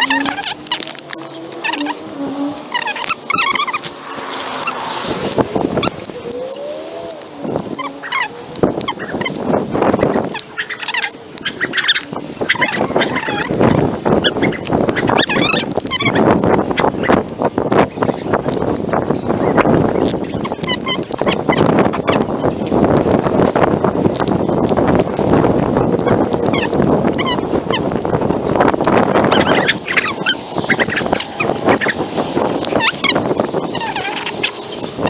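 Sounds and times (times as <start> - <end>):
birds chirping and calling: 0.0 - 35.0.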